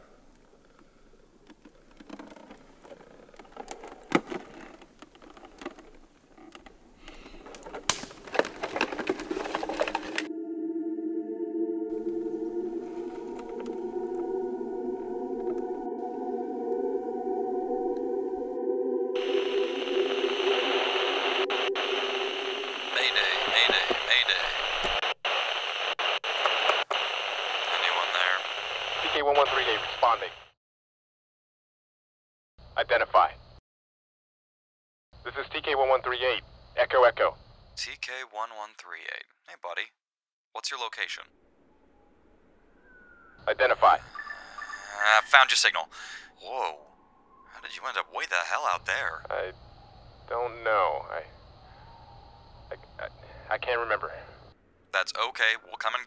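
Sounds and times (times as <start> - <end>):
twigs snapping: 7.1 - 10.3
garbled radio voices: 19.2 - 30.4, 43.4 - 46.9, 47.5 - 49.5, 55.0 - 56.0
radio static hiss: 19.2 - 30.6, 35.3 - 38.5, 43.4 - 46.8, 47.5 - 49.6, 50.2 - 51.5, 52.7 - 56.0.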